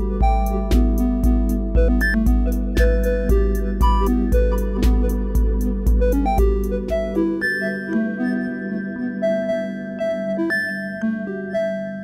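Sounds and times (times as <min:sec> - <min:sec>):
low synth beat: 0:00.0 - 0:07.5
synthesizer plucked and held notes: 0:00.0 - 0:12.0.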